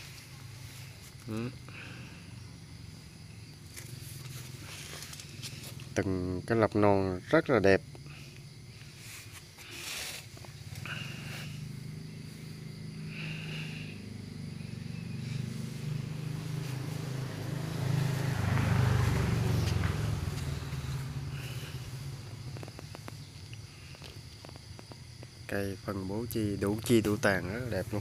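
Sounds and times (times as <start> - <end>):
crickets chirping: 0.0 - 28.0
vehicle engine passing: 10.4 - 24.0.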